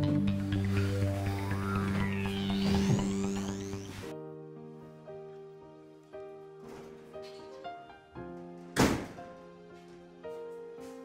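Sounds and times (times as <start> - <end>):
slow sad keyboard music: 0.0 - 11.0
loud thunk: 8.8 - 9.2.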